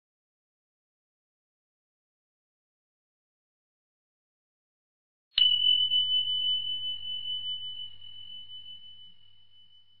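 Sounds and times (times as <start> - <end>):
high bell chime: 5.4 - 10.0.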